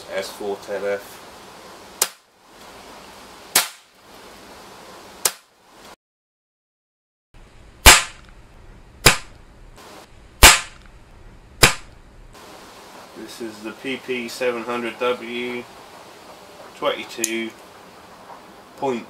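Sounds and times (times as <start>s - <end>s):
air rifle shots: 3.5s - 3.9s, 7.8s - 8.3s, 9.0s - 9.4s, 10.4s - 10.9s, 11.6s - 11.9s.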